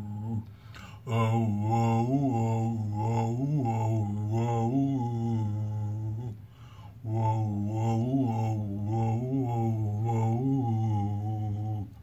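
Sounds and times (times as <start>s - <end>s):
man singing vocal warm-up: 0.0s - 12.0s.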